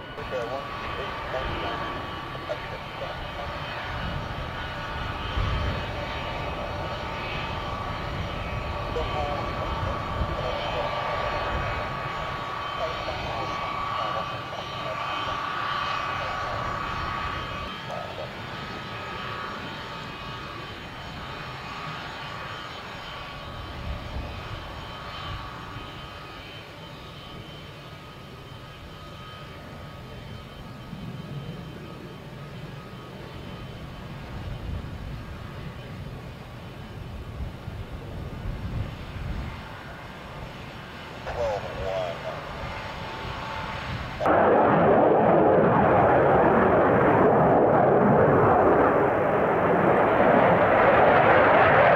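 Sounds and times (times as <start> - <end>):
jet engines whining: 0.0 - 51.9.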